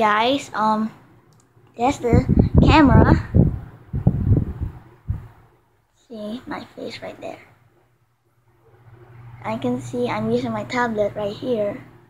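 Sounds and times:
microphone handling noise: 0:02.0 - 0:05.4.

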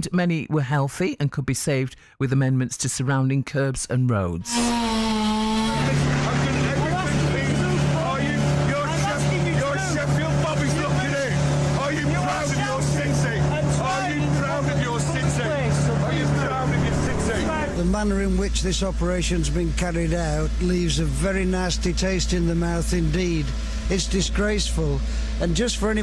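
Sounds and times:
engine droning: 0:04.5 - 0:26.0.

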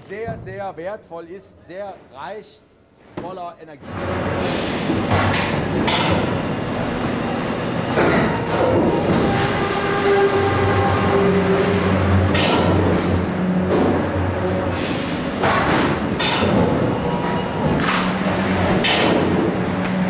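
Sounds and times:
machinery running: 0:03.8 - 0:20.0.

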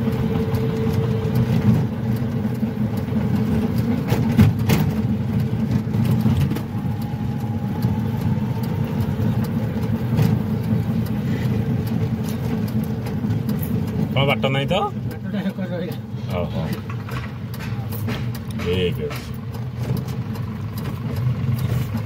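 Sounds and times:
tyres rumbling on rough road: 0:00.0 - 0:22.0
vehicle body rattles and knocks: 0:03.3 - 0:06.7, 0:16.8 - 0:22.0.

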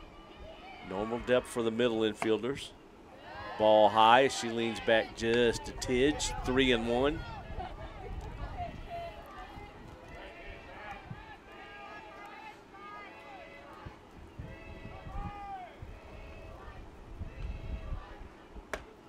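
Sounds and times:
distant voices calling out: 0:00.0 - 0:18.4.

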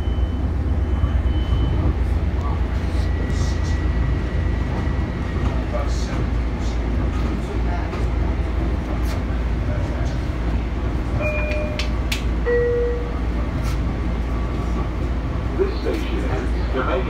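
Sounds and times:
train rumbling: 0:00.0 - 0:17.0.

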